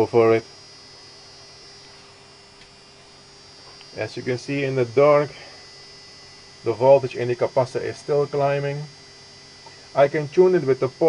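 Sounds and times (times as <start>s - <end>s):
electrical hum: 0.0s - 11.0s
high-pitched whine: 0.0s - 11.0s.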